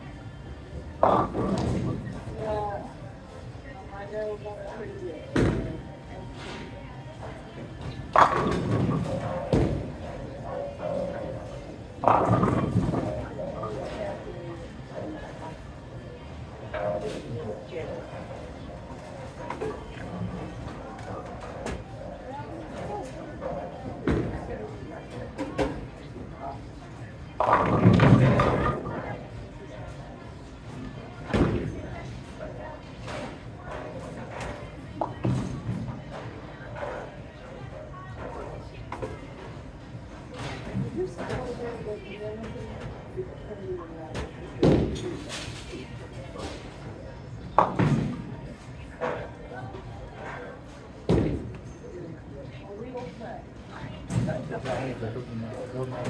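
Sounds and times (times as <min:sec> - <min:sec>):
background chatter: 0:00.0 - 0:56.0.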